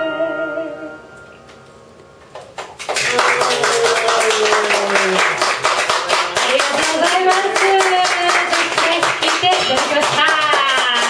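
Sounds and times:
audience applauding: 2.3s - 11.0s.

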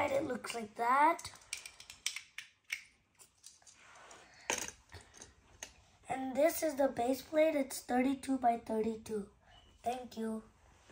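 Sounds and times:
plastic toy bricks clicking: 1.2s - 3.6s.

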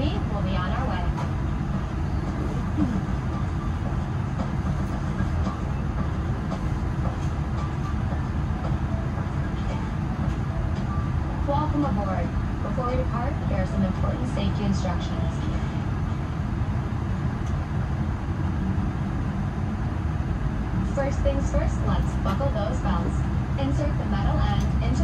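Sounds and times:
airliner cabin rumble: 0.0s - 25.0s
faint voice: 2.7s - 3.1s.

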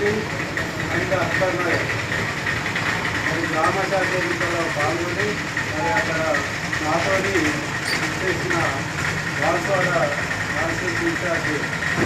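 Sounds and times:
noisy background hum: 0.0s - 12.0s.

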